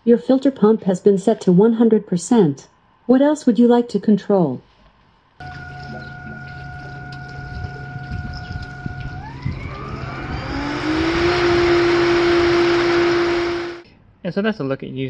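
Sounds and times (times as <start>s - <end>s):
pool pump motor whine: 5.4s - 13.8s.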